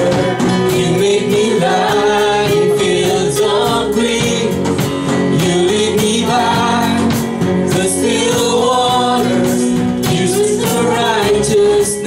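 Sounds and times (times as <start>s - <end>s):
strummed guitar: 0.0s - 12.0s
voices singing together: 0.0s - 12.0s.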